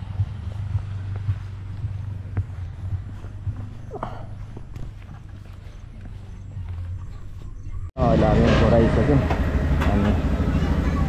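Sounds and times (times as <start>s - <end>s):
footsteps on brick path: 0.0s - 7.9s
steady low rumble: 0.0s - 11.0s.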